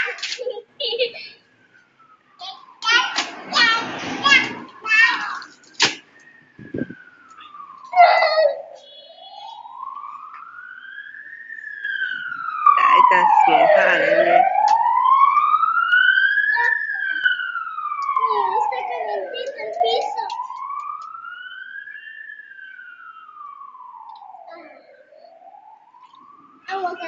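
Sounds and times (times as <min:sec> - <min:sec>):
children's voices: 0:00.0 - 0:01.4, 0:02.4 - 0:05.6, 0:07.4 - 0:09.7, 0:12.8 - 0:14.4, 0:16.5 - 0:17.3, 0:18.1 - 0:20.5, 0:26.7 - 0:27.0
emergency vehicle siren wailing: 0:00.0 - 0:27.0.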